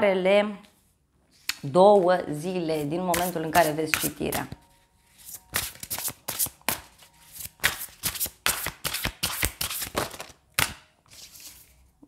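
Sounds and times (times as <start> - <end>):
cards being shuffled: 2.8 - 11.7.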